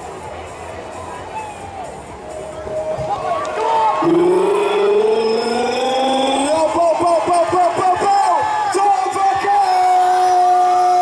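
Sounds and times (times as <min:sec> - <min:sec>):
commentator's long rising call: 0:03.3 - 0:08.4.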